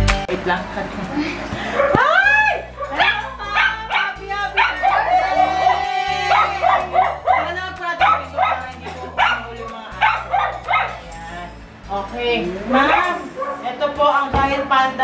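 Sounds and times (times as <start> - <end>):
background music with bass: 0.0 - 13.6
dog barking and yipping: 1.6 - 11.2, 12.8 - 13.7.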